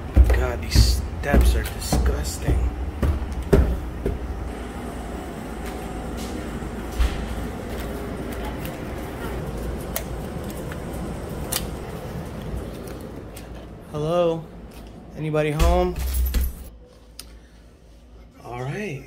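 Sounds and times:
footsteps on wooden stairs: 0:00.0 - 0:04.6
knock on door: 0:00.2 - 0:04.3.

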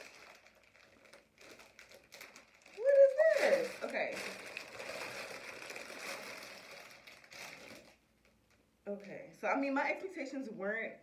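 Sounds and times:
plastic packaging crinkling: 0:00.0 - 0:08.7.

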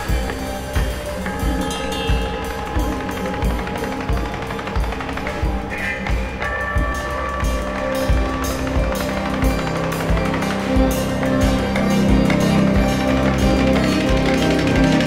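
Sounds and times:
steady low thumping beat: 0:00.0 - 0:15.0
string ensemble playing sustained notes: 0:00.0 - 0:15.0.

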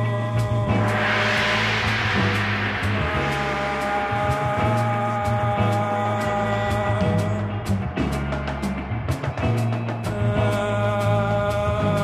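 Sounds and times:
drum and percussion crash: 0:00.5 - 0:05.8.

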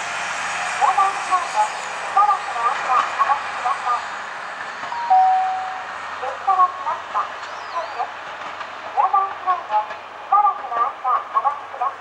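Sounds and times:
diesel railcar running on track: 0:00.0 - 0:12.0.

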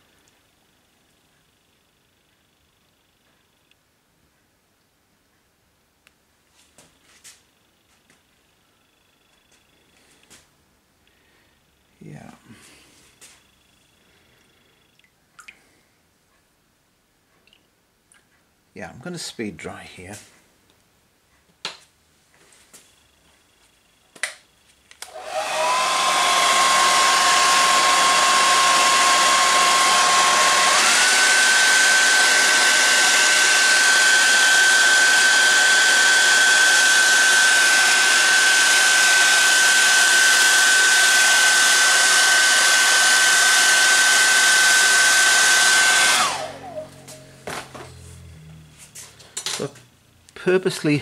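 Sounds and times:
hair dryer blowing with whine: 0:25.0 - 0:49.1.

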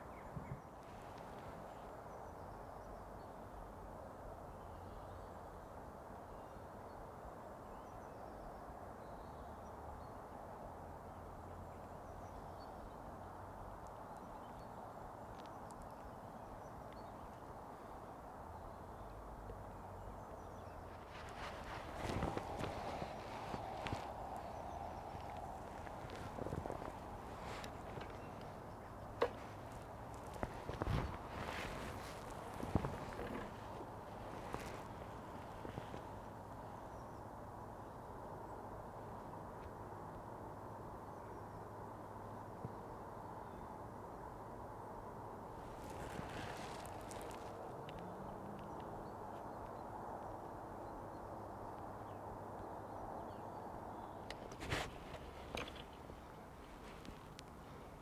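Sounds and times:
rustling: 0:20.9 - 0:36.4, 0:45.6 - 0:47.7, 0:54.4 - 0:58.0.

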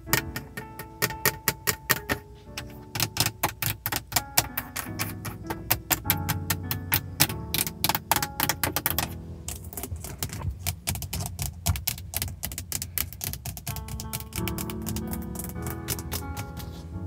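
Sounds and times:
soft spa music: 0:00.0 - 0:11.3, 0:13.4 - 0:17.0
fingernails tapping on plastic: 0:00.0 - 0:16.8.

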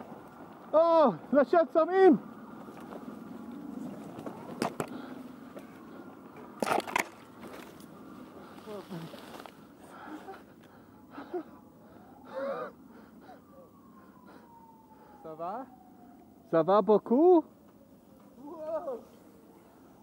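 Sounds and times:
bike tyres rolling on dirt: 0:00.0 - 0:05.8, 0:06.4 - 0:09.7.

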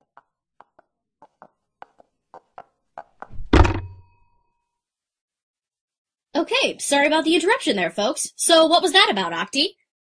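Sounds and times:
heavy thunk: 0:03.3 - 0:04.1
faint ring: 0:03.7 - 0:04.7.

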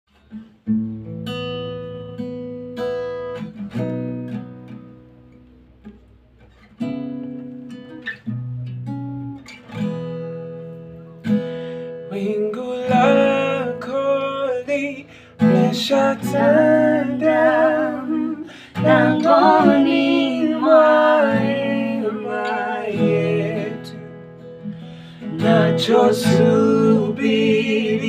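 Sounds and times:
acoustic guitar chords: 0:00.1 - 0:28.0
person singing: 0:12.2 - 0:24.1, 0:25.3 - 0:28.0.

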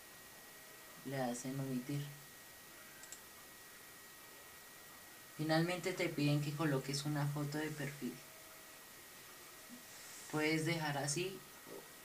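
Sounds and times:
computer mouse clicks: 0:03.0 - 0:03.3.

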